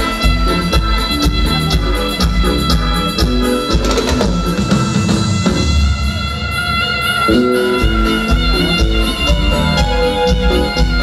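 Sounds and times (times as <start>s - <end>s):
live band music through pa: 0.0s - 11.0s.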